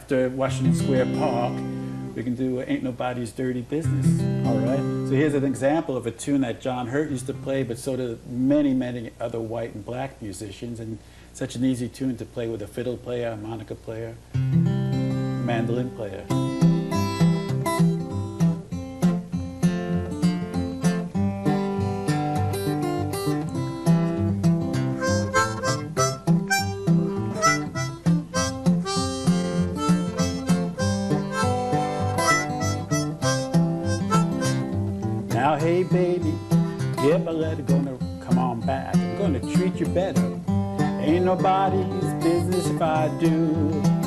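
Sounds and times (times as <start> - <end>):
fingerpicked acoustic guitar: 0.1 - 8.7, 14.2 - 44.0
harmonica: 16.3 - 18.9, 21.5 - 38.2, 38.9 - 44.0.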